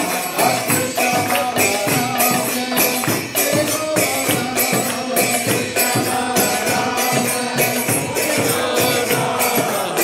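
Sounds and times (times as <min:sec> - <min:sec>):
group chanting: 0:00.0 - 0:10.0
percussion striking steady beat: 0:00.0 - 0:10.0.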